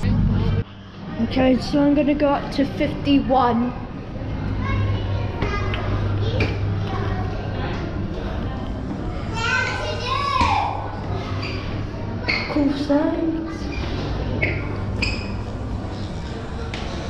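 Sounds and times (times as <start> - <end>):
steady low hum: 0.0 - 17.0
voices echoing in stairwell: 0.0 - 17.0.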